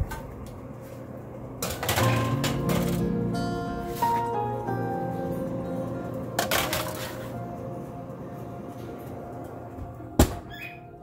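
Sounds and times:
oven door shutting: 1.6 - 3.3
soft background music: 1.8 - 11.0.

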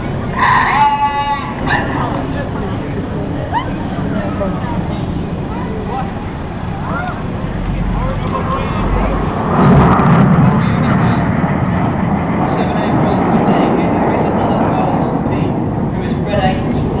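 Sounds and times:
jet aircraft roaring past: 0.0 - 17.0.

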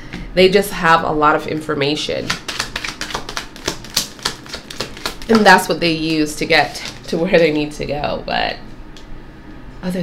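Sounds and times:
cards being shuffled: 2.3 - 5.6, 6.6 - 7.2.

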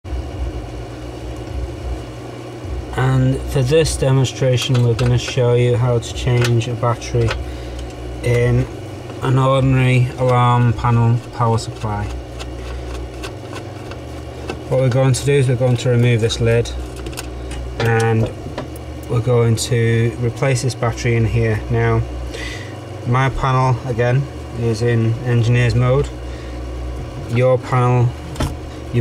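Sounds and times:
low steady hum: 0.0 - 29.0
low uneven rumble: 0.2 - 29.0.

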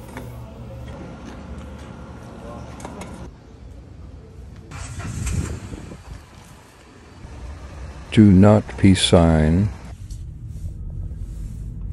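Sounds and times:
steady low rumble: 4.7 - 11.9
vehicle passing: 4.7 - 11.9.

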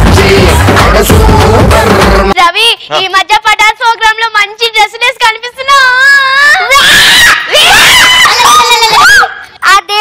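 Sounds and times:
high-pitched human scream: 5.9 - 9.4.

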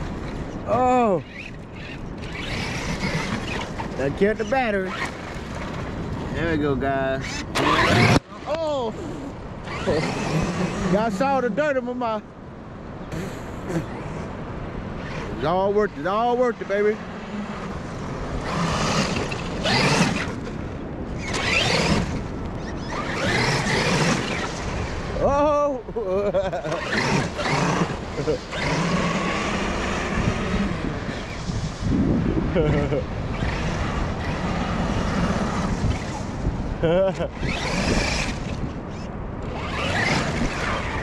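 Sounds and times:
rc truck motor whining: 0.0 - 4.0, 7.2 - 8.2, 9.6 - 11.2, 18.3 - 20.5, 21.2 - 24.9, 26.6 - 31.6, 33.3 - 36.3, 37.4 - 41.0
tires spinning in sand: 0.0 - 12.2, 14.9 - 41.0.

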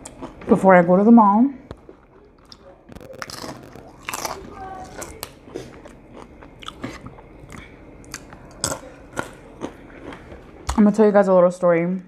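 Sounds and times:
person chewing crunchy food: 0.0 - 0.5, 1.7 - 10.8.

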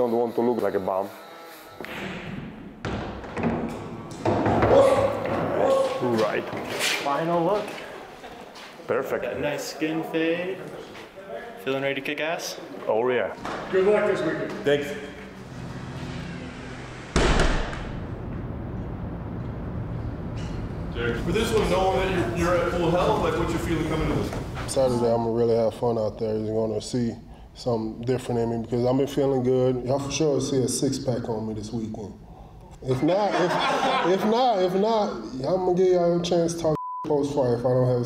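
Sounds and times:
cue striking pool balls: 1.8 - 5.6
pool ball thud: 1.8 - 5.9
low rumbling noise: 13.6 - 25.0
loud boom: 14.8 - 24.7.

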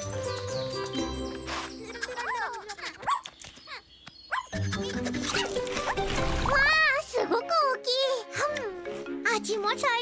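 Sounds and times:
background music: 0.0 - 2.2, 4.5 - 10.0.

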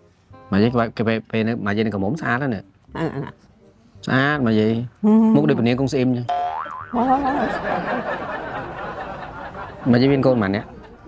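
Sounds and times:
cartoon boing sound effect: 6.3 - 7.2.

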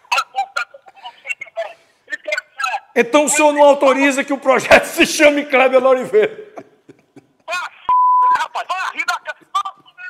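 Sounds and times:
man speaking: 1.2 - 6.6
censor bleep: 7.9 - 8.4.

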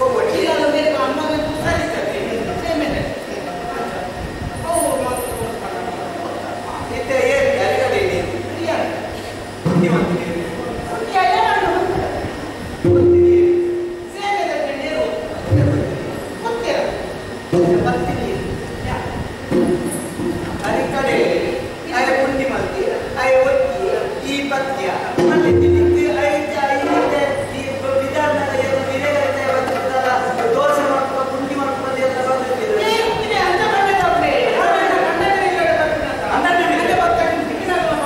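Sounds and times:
man speaking in a hall: 0.0 - 19.0, 19.6 - 38.0.

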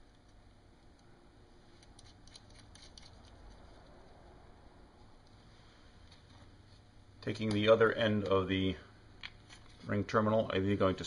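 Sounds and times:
small metal parts clicking: 1.7 - 3.6.

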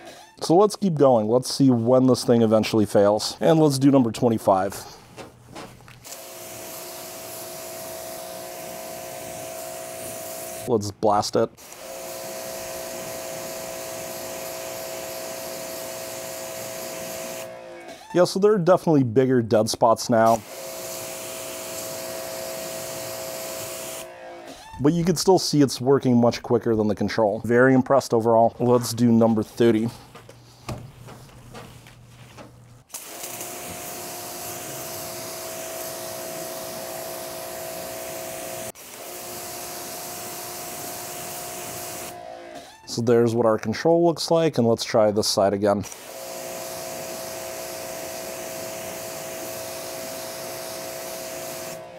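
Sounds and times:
pressure washer pump whine: 6.0 - 10.7, 11.6 - 18.1, 20.3 - 24.8, 32.9 - 42.9, 45.9 - 51.9
pressure washer spray hissing: 6.2 - 10.7, 32.9 - 42.2, 46.0 - 51.8.

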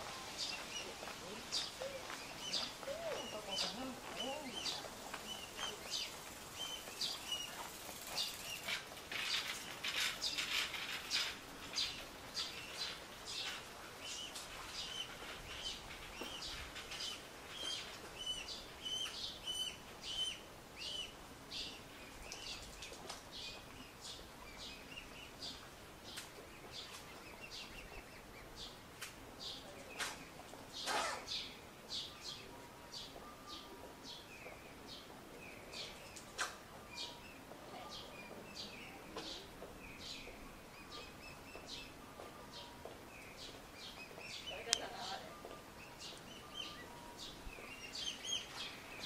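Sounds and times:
cygnets peeping: 0.0 - 49.0
rustle: 0.0 - 49.0.

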